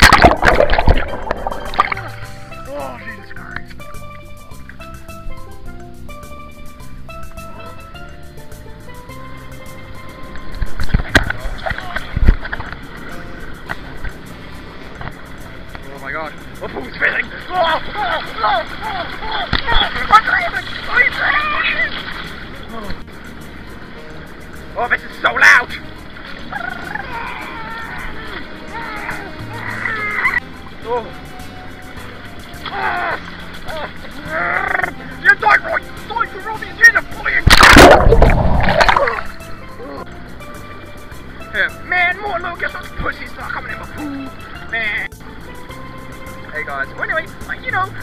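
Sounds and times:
water splashing in pool: 0.0 - 2.6, 17.0 - 23.2, 32.5 - 39.6
background music: 0.0 - 48.0
pool water splashing: 0.0 - 48.0
voices calling out: 16.4 - 23.6, 24.5 - 38.2.

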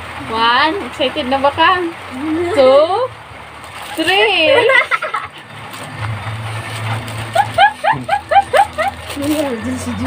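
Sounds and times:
low engine hum: 0.0 - 10.0
woman laughing: 4.3 - 5.4, 7.2 - 9.2.

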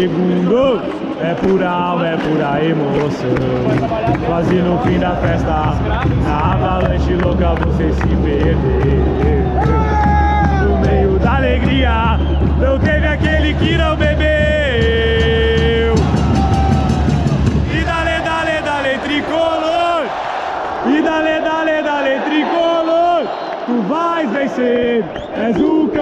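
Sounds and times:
rhythmic hits: 0.0 - 21.6
crowd singing a chant: 0.0 - 22.8, 23.6 - 26.0.

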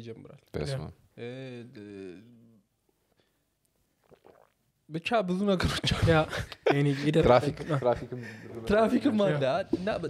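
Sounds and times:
man sipping and swallowing: 4.0 - 4.6.

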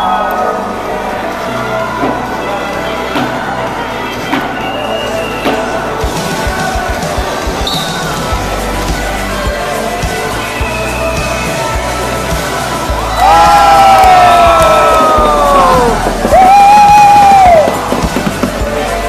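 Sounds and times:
crowd noise in ice rink: 0.0 - 19.0
music with bass line: 0.0 - 19.0.

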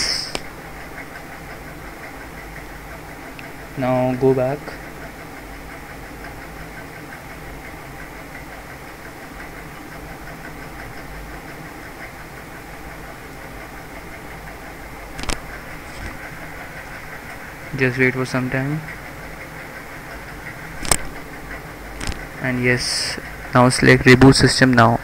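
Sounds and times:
low hum and hiss: 0.0 - 25.0
sharp click: 20.8 - 21.1, 22.0 - 22.2.

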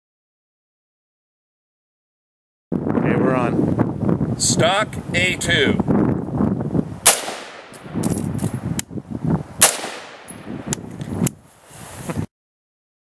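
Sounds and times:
loud rifle shots: 7.0 - 8.0, 9.6 - 10.5
fainter sharp cracks: 7.1 - 8.1, 9.6 - 10.8.

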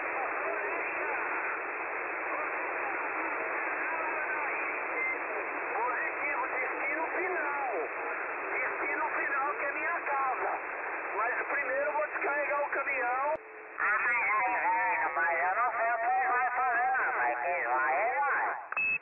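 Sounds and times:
radio static hiss: 0.0 - 19.0
voices over radio: 0.0 - 19.0.

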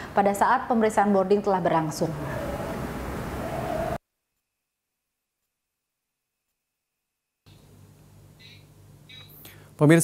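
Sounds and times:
room tone hiss: 0.0 - 4.0, 7.4 - 10.0.

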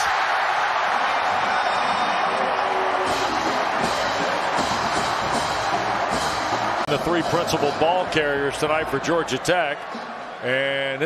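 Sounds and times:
stadium crowd cheering: 0.0 - 11.0
music playing: 0.2 - 11.0.

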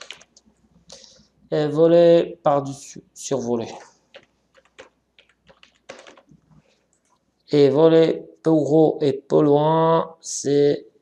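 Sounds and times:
typing on computer keyboard: 0.0 - 0.5, 4.0 - 6.5.

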